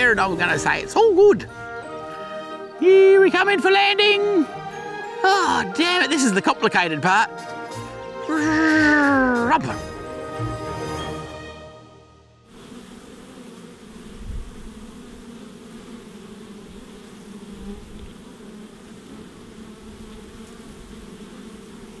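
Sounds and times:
honey bees buzzing: 0.0 - 22.0.

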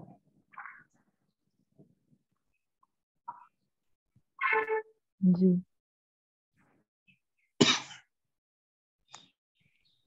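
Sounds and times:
person clearing throat: 7.6 - 8.1.

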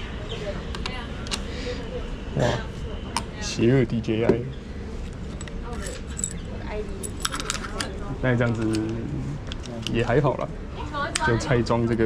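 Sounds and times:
faint background voices: 0.0 - 3.6
steady street hum: 0.0 - 12.0.

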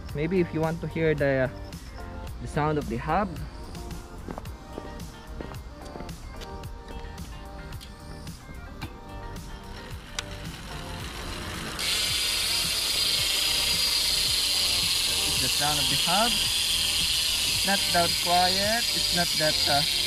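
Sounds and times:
background music: 0.0 - 20.0
bicycle freehub ratchet ticking: 6.6 - 20.0.

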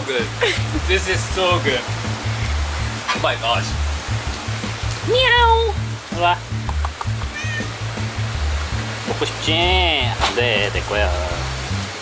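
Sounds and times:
music with bass beat: 0.6 - 9.2
cat meowing: 7.1 - 7.9.

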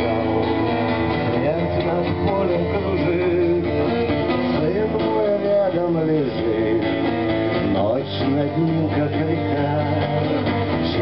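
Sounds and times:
man singing: 0.0 - 11.0
strummed acoustic guitar: 0.0 - 11.0.

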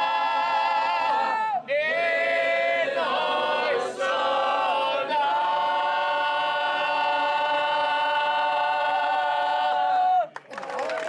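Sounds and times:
group singing unaccompanied: 0.0 - 10.2.

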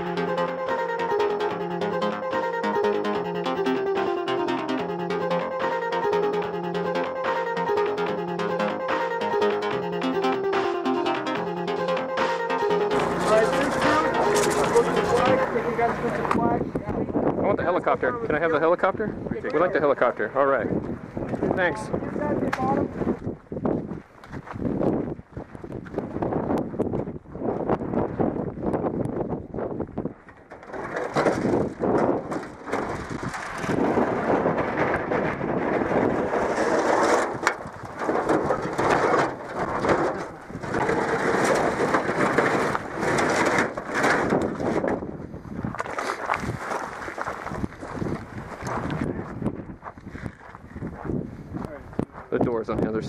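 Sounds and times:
footsteps crunching on gravel: 12.9 - 16.4, 22.7 - 26.2, 45.4 - 52.4.

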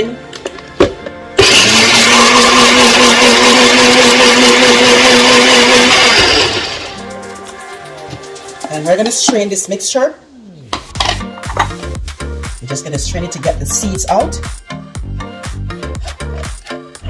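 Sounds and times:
blender click: 1.4 - 7.0
blender motor grinding: 1.4 - 7.0.

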